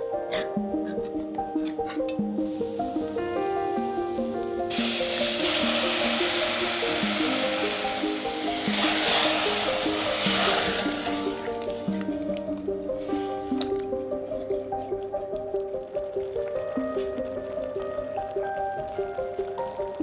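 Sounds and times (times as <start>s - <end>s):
instrumental background music: 0.0s - 20.0s
tomatoes sizzling in hot pan: 0.8s - 14.9s.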